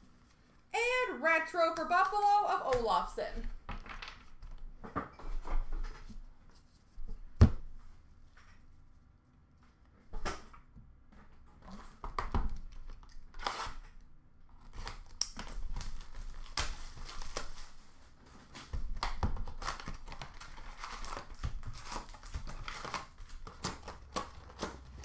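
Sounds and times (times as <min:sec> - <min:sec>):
packaging rustling and tearing: 0:11.8 - 0:13.9, 0:14.5 - 0:25.0.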